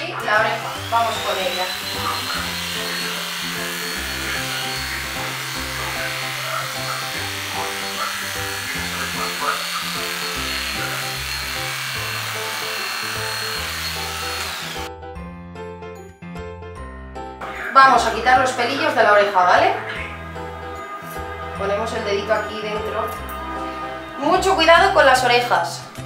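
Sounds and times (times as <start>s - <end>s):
electric dog clipper whining: 0.0s - 14.9s, 17.7s - 24.2s
background music: 0.0s - 26.0s.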